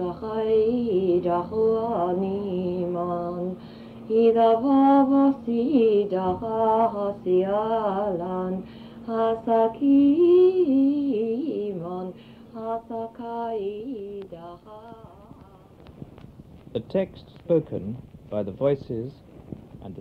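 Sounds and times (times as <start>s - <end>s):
woman singing wordless notes: 0.0s - 15.8s
low hum: 0.0s - 20.0s.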